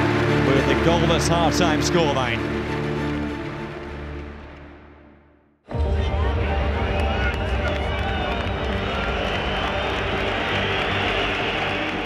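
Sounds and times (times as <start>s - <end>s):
stadium crowd cheering and chanting: 0.0s - 4.6s, 5.7s - 12.0s.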